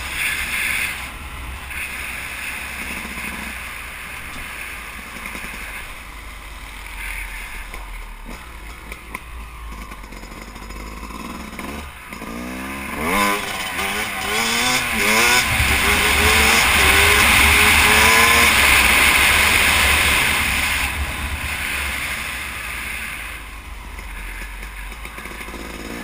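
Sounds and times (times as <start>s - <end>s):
dirt bike engine accelerating: 0.0s - 26.0s.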